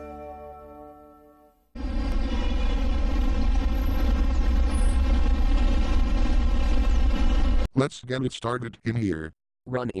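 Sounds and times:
buzzy hum: 1.8 - 7.7
engine-like rumbling drone: 1.8 - 7.7.

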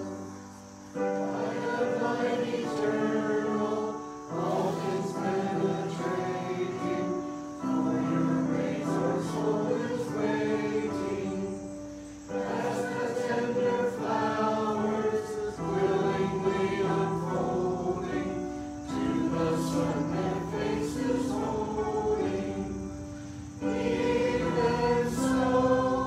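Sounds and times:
congregation singing a hymn: 0.0 - 26.0
electronic keyboard: 0.0 - 26.0.

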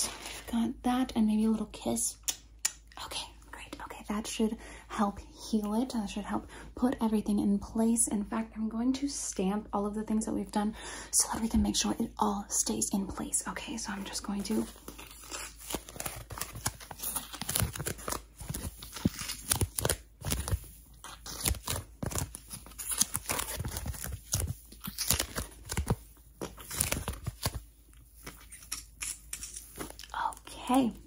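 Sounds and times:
crinkly rustling: 0.0 - 0.8, 13.8 - 30.3.

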